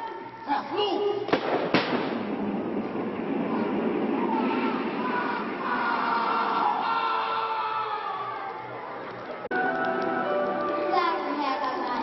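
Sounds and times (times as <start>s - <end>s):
pyrotechnic bangs: 1.3s - 6.5s.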